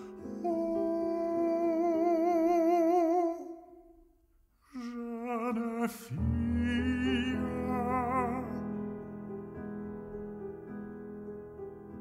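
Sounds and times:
baritone voice singing with vibrato: 0:00.0 - 0:04.0, 0:04.7 - 0:08.8.

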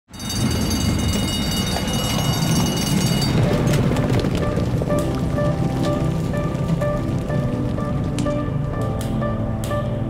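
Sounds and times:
rumble of hooves and wheels: 0:00.1 - 0:10.0.

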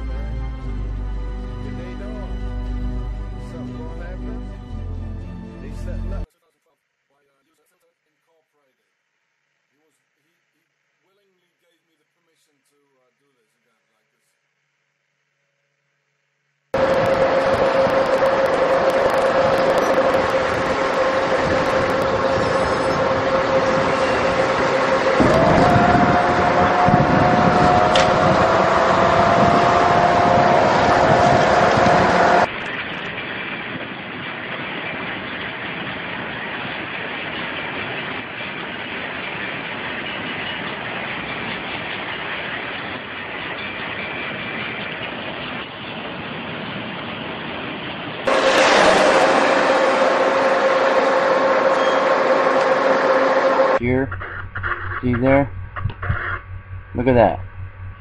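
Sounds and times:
steady tone: 0:16.7 - 0:33.1, 0:48.3 - 0:58.0
slightly rising tone: 0:16.8 - 0:33.1, 0:48.3 - 0:58.0
train wheels rumbling on rails: 0:16.8 - 0:58.0.

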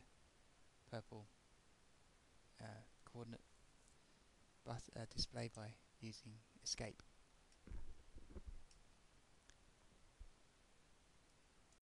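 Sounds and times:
soft low bumps: 0:07.7 - 0:08.6.

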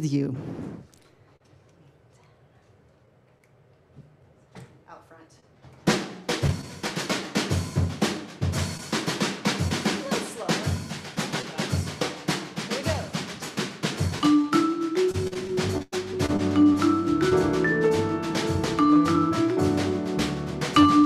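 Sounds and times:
jazz drum kit groove: 0:05.7 - 0:21.0
vibraphone: 0:14.2 - 0:21.0.

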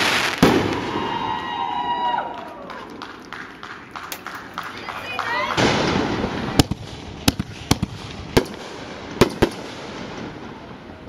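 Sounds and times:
firework rushing hiss: 0:00.0 - 0:01.3
fireworks bangs: 0:00.0 - 0:11.0.

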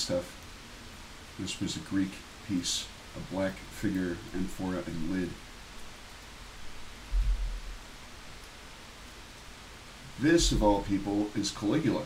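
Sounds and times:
microphone hiss: 0:00.0 - 0:12.0
low thump: 0:07.1 - 0:07.8, 0:10.4 - 0:10.8.

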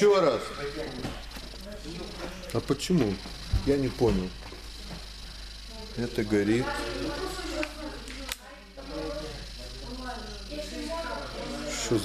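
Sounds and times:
voices echoing in a hall: 0:00.0 - 0:04.4, 0:05.1 - 0:12.0
steady low hum: 0:00.0 - 0:12.0.

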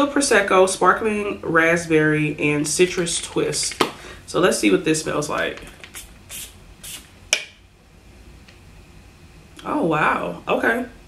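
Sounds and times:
pump spray bottle spritz: 0:05.6 - 0:07.1.

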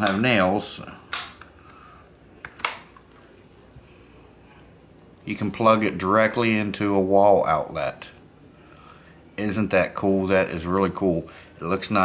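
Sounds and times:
sharp plastic clicks: 0:01.1 - 0:01.5.

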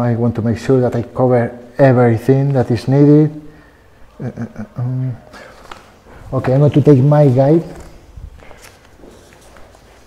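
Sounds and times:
footsteps on hard floor: 0:08.3 - 0:10.0.

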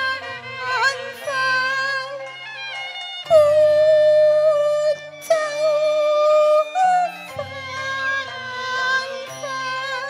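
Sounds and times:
high opera melody: 0:00.0 - 0:10.0.

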